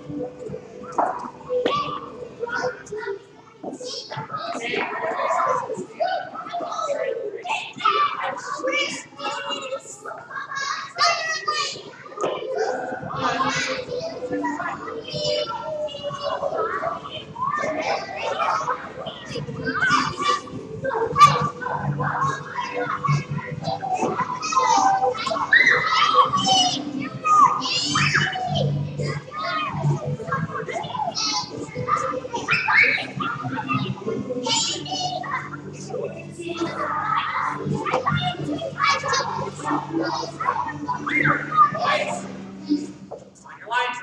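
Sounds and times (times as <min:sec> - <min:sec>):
children playing and calling out: 0:00.0 - 0:44.0.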